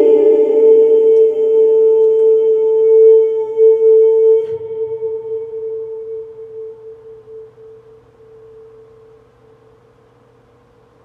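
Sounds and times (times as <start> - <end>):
ringing musical tone: 0.0 - 9.1.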